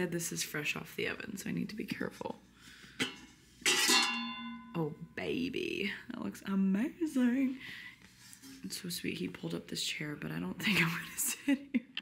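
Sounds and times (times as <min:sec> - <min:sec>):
metal plate cover clinking: 0:03.0 - 0:04.8
scraping ringing metallic tone: 0:03.6 - 0:05.2.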